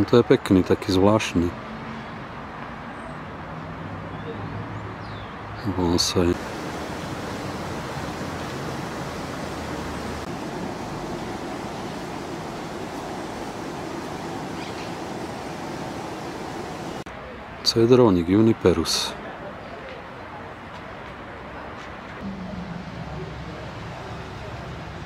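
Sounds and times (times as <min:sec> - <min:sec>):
steady rushing noise: 0:06.1 - 0:17.1.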